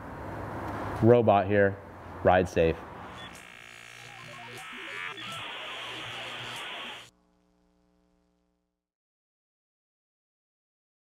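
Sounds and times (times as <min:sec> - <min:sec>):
buzzing static: 0:03.0 - 0:08.4
faint electronic tone: 0:03.1 - 0:07.1
stepped electronic beeps: 0:03.1 - 0:07.1.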